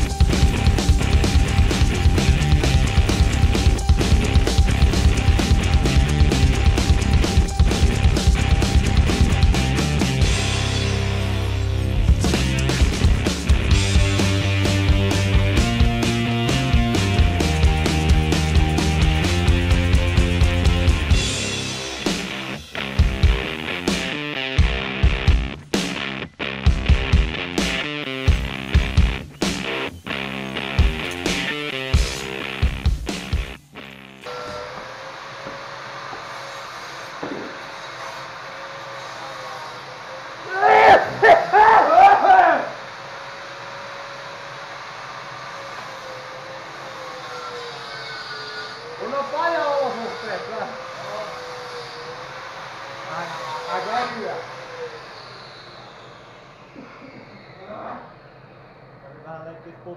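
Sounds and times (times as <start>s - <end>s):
workshop machine running: 0.0s - 25.5s, 27.4s - 59.9s
rock music with electric guitar: 0.0s - 34.3s
loud voices: 39.7s - 43.0s.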